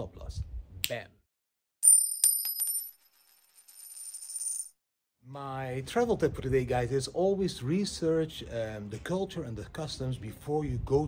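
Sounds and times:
coin drop metallic clinks: 1.8s - 4.8s.

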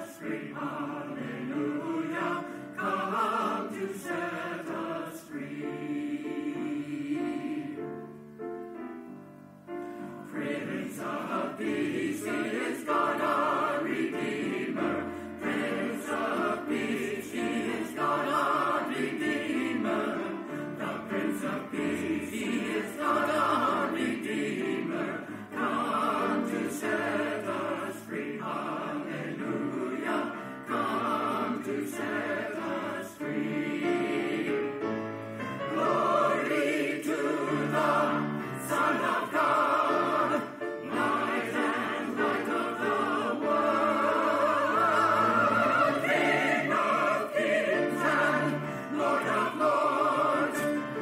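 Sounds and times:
choir singing: 0.0s - 8.4s, 9.9s - 51.0s.

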